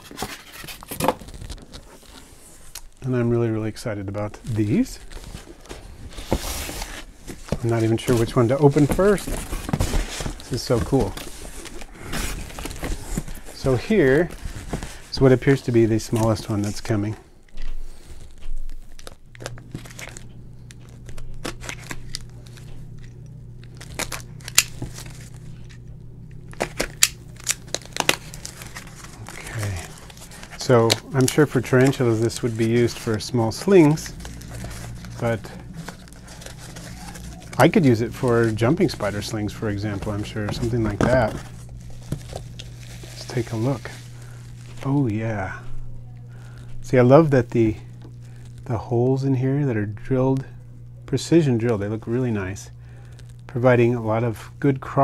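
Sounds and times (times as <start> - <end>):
steady low hum: 0.0 - 55.0
tape tearing: 18.0 - 25.8, 26.5 - 45.0.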